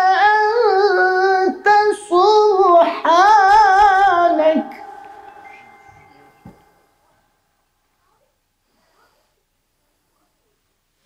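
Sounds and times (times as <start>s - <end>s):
man reciting melodically: 0.0s - 6.7s.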